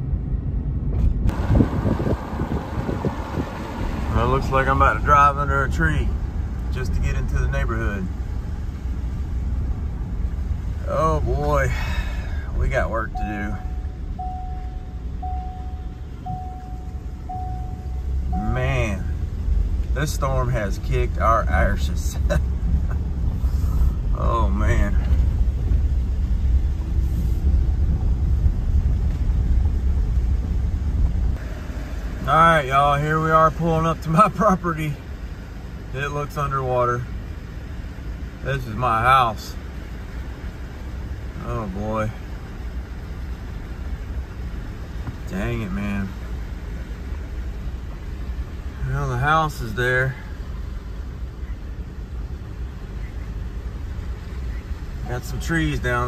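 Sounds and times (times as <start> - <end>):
vehicle engine and tyre rumble: 0.0 - 56.0.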